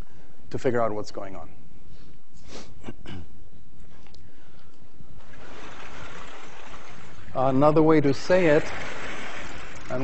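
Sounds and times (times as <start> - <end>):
person coughing: 2.8 - 3.4.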